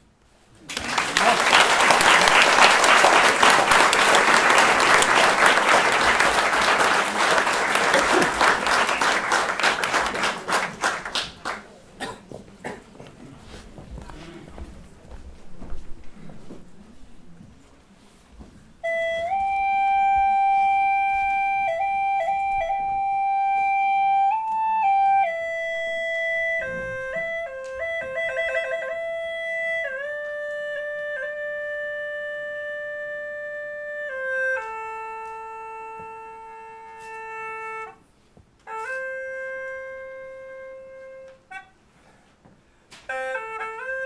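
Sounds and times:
gourd flute melody: 0:01.2 - 0:11.2, 0:18.7 - 0:41.9, 0:42.9 - 0:44.0.

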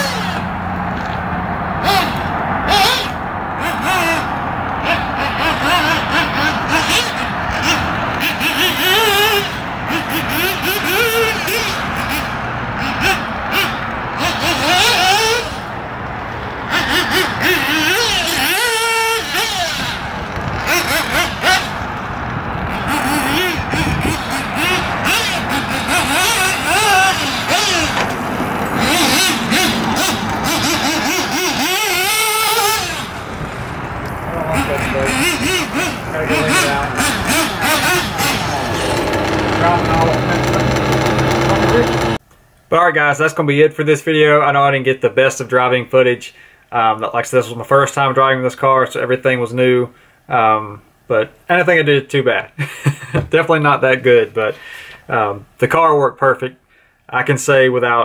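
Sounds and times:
small model engine revving: 0:00.0 - 0:01.1, 0:01.8 - 0:15.7, 0:16.6 - 0:42.2.

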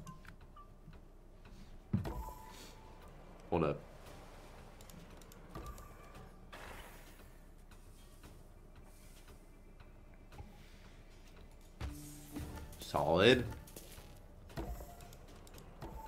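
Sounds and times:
faint game clicks: 0:04.7 - 0:12.7, 0:13.4 - 0:16.0.

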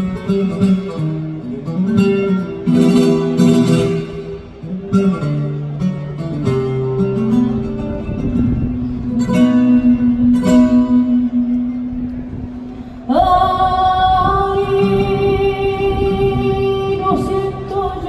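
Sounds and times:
flamenco guitar: 0:00.0 - 0:18.0
woman singing flamenco: 0:08.9 - 0:18.0.

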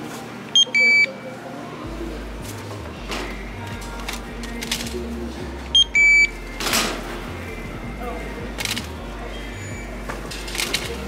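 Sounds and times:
barcode scanner beeps: 0:00.5 - 0:01.2, 0:05.7 - 0:06.4.

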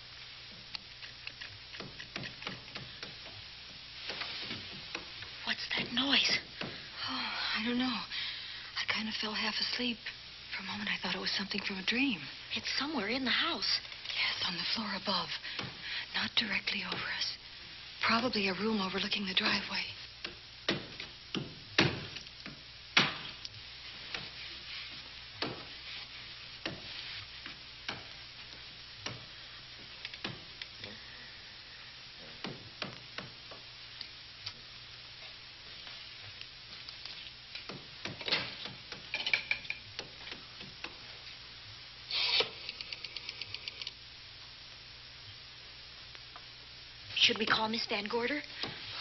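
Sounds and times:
film soundtrack hiss: 0:00.0 - 0:49.0.

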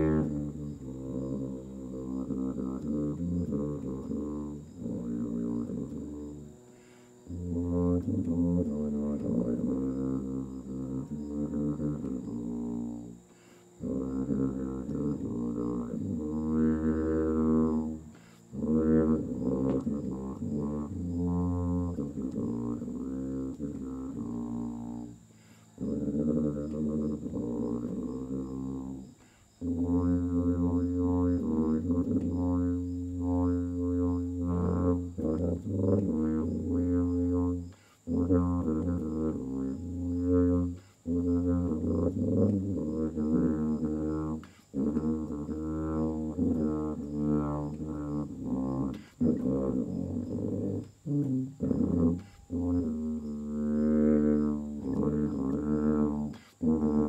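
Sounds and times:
solo tuba melody: 0:00.0 - 0:57.0.

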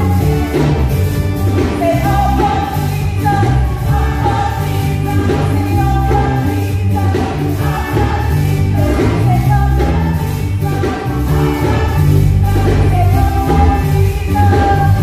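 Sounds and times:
gospel music over speakers: 0:00.0 - 0:15.0.

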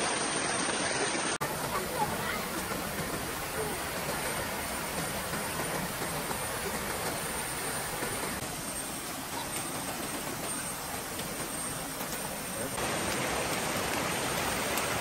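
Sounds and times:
water cascading over rocks: 0:00.0 - 0:15.0.

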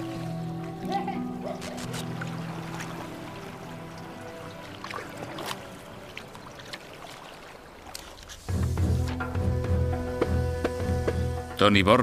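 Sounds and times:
water lapping and splashing: 0:00.0 - 0:09.4.

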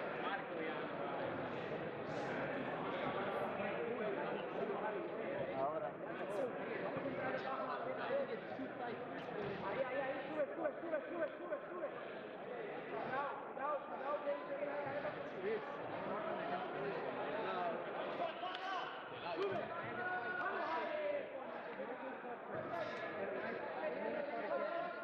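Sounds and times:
voices talking and calling out: 0:00.0 - 0:25.0.

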